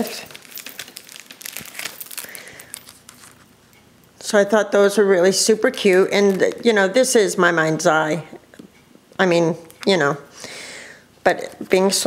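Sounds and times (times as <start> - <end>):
plastic packaging crinkling: 0.0 - 3.6, 5.3 - 7.1.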